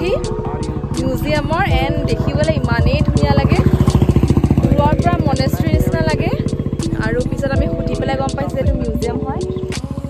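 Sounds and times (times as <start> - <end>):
small engine running: 0.0 - 10.0
voices: 0.0 - 10.0.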